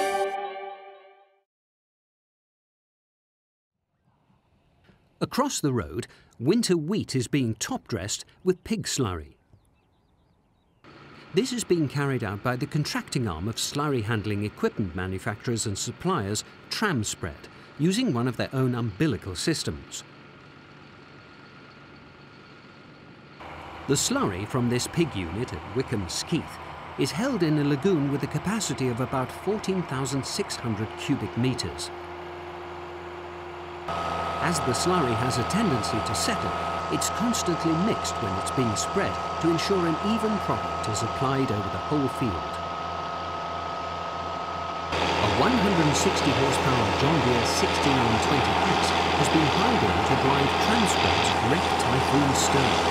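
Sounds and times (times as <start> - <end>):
tractor engine hum: 4.2 - 52.9.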